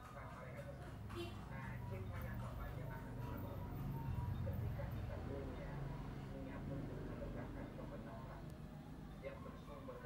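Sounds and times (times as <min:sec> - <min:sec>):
faint background voices: 0:00.0 - 0:10.0.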